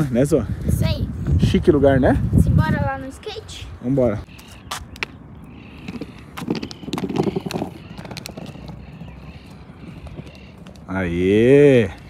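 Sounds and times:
skateboard wheels on paving blocks: 0:04.4 - 0:12.0.

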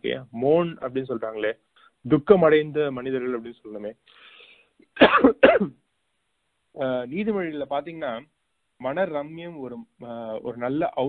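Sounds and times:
man clearing his throat: 0:05.0 - 0:05.8.

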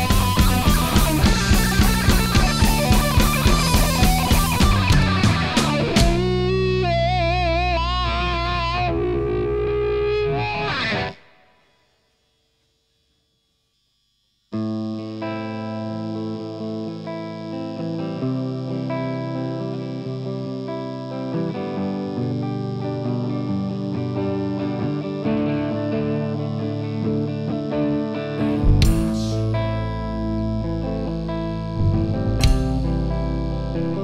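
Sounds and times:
rock band playing: 0:00.0 - 0:11.2, 0:28.5 - 0:34.0
electric guitar riff: 0:00.0 - 0:11.8, 0:14.6 - 0:34.0.

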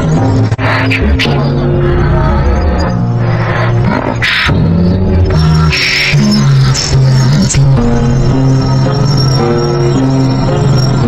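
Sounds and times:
bass notes: 0:00.0 - 0:11.0.

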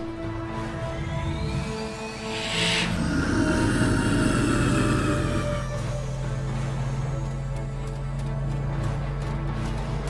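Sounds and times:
tense ominous soundtrack music: 0:00.0 - 0:10.0
sharp hissing burst: 0:02.2 - 0:05.0.

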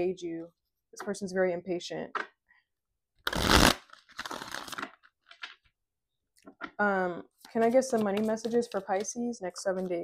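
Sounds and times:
cards being shuffled: 0:03.3 - 0:05.7, 0:07.4 - 0:09.2.

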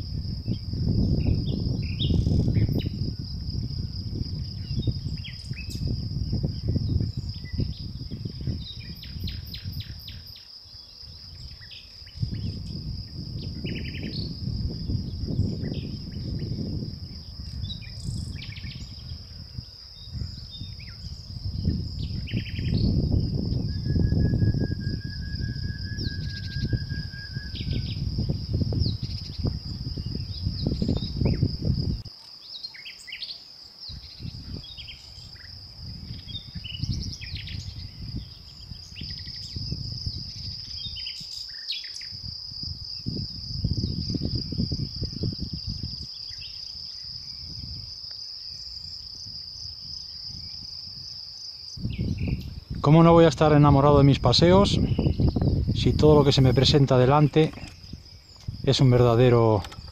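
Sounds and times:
wind rumble on microphone: 0:00.0 - 0:32.1, 0:33.8 - 0:59.9
crickets chirring: 0:00.0 - 0:59.9
bird chirps: 0:17.4 - 0:28.0, 0:54.8 - 0:59.9.

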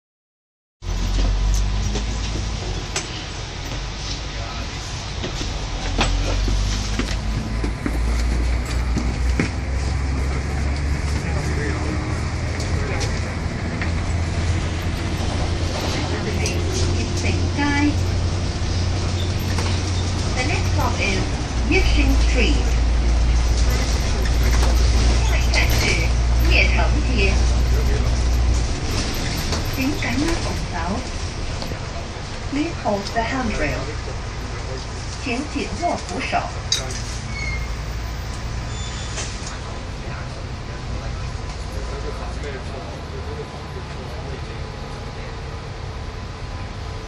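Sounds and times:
bus engine and road rumble: 0:00.8 - 0:47.0.

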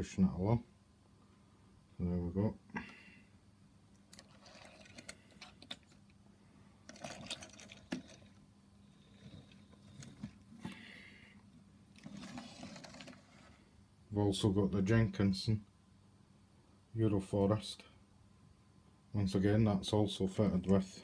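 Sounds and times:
low steady hum: 0:00.0 - 0:21.0
handling clicks and rustles: 0:04.0 - 0:06.2, 0:09.0 - 0:10.8.

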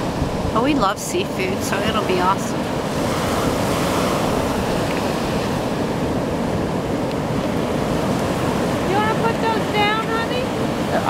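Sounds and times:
ocean surf breaking on beach: 0:00.0 - 0:11.0.

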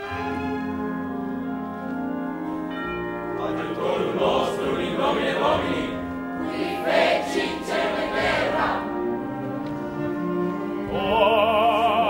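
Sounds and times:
orchestra playing: 0:00.0 - 0:12.0
chorus singing a chant: 0:03.4 - 0:09.1.

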